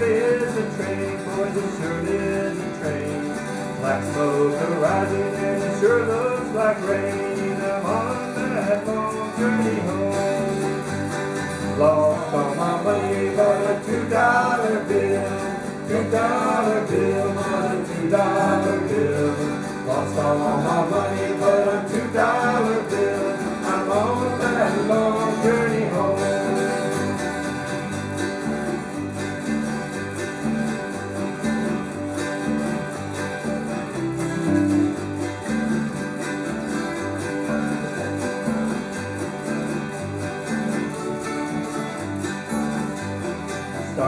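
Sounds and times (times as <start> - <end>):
person singing: 0.0 - 27.7
bluegrass band instrumental: 0.0 - 44.0.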